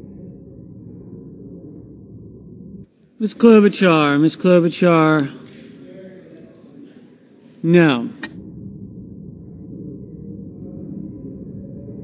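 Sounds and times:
low murmur of voices: 3.2 - 8.4.

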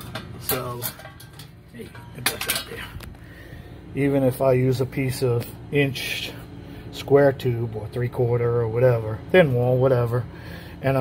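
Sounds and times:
metal parts clinking: 0.0 - 2.9
sharp metal clanks: 0.0 - 2.9.

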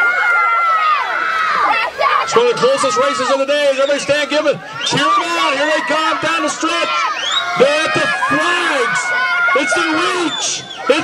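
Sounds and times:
long held shout: 0.0 - 11.0
spectators cheering and yelling: 0.0 - 11.0.

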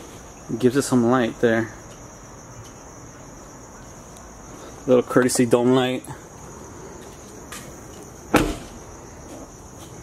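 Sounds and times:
crickets chirping: 0.0 - 10.0
truck door shutting: 8.3 - 8.8.

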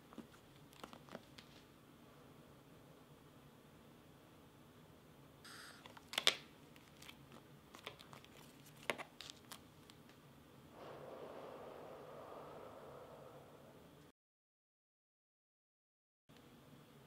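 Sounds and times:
airy hiss: 10.7 - 14.1.

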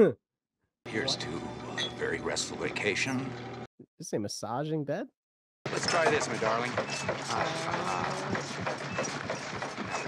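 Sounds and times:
vibrating bed rattling and knocking: 5.7 - 10.0.

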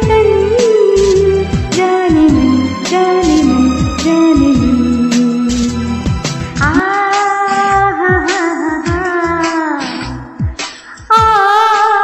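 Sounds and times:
patriotic song with backing track: 0.0 - 11.4.

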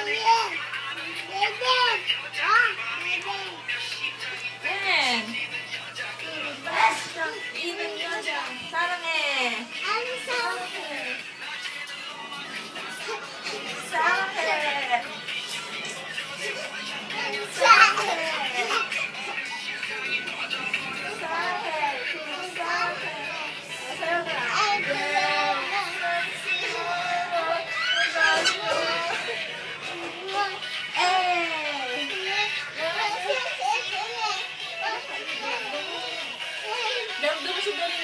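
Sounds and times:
children at play: 0.0 - 38.0
child squealing excitedly: 27.7 - 28.7.

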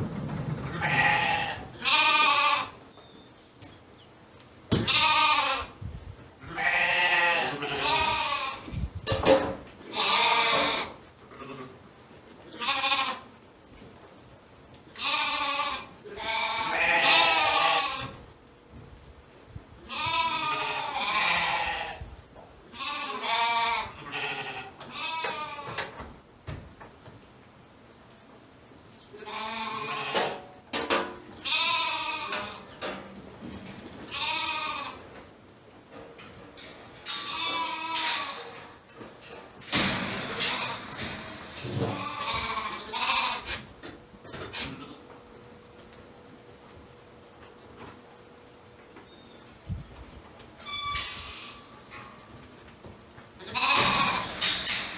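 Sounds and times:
sheep and lambs bleating: 0.8 - 2.8, 4.8 - 5.8, 6.4 - 8.7, 9.9 - 11.8, 12.5 - 13.3, 15.0 - 18.2, 19.9 - 22.0, 22.7 - 25.8, 29.1 - 30.4, 31.4 - 32.7, 34.0 - 35.0, 37.2 - 38.6, 41.9 - 43.6, 53.4 - 54.3.

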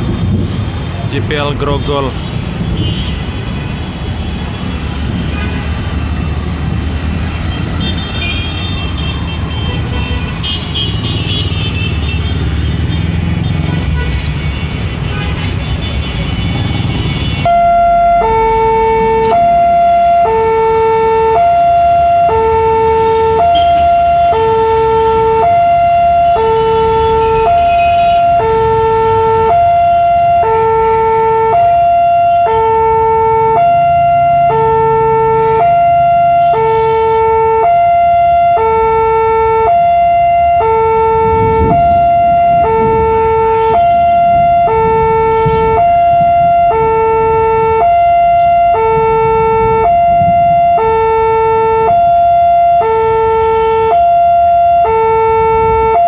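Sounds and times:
road traffic: 0.0 - 56.0
level-crossing two-tone alarm: 17.4 - 56.0.

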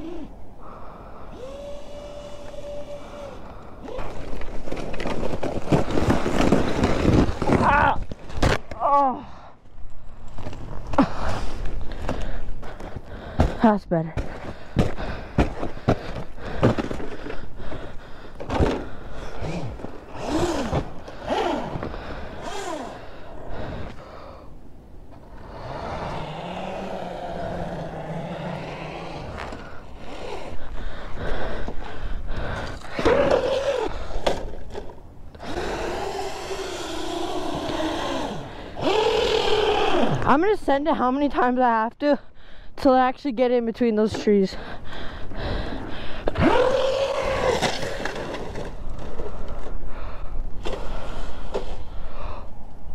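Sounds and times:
toy truck electric motor whining: 1.3 - 4.2, 19.4 - 23.1, 33.0 - 33.9, 35.4 - 40.2, 46.3 - 49.1.

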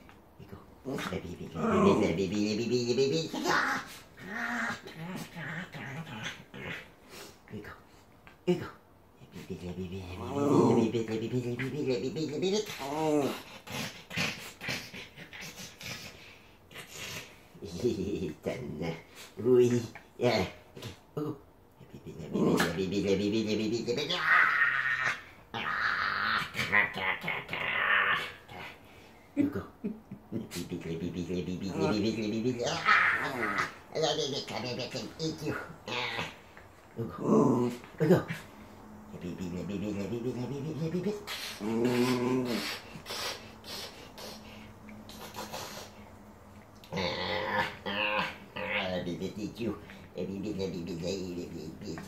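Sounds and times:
dog play-growling: 0.8 - 7.3, 30.4 - 46.0, 46.8 - 52.0.

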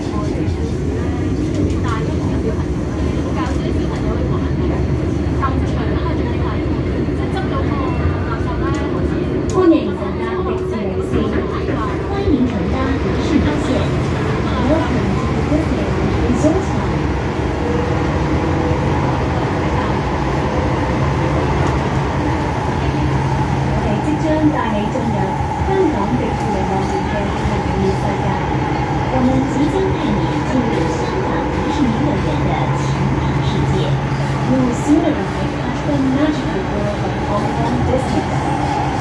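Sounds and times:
people talking: 0.0 - 39.0.

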